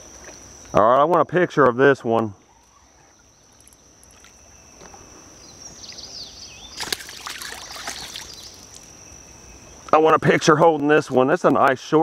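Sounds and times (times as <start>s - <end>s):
fish thrashing and splashing water: 6.8s - 8.8s.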